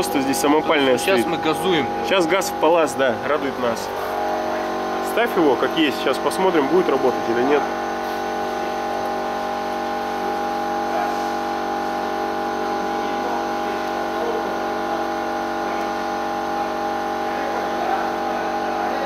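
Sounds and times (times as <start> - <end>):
machine droning: 0.0 - 19.0.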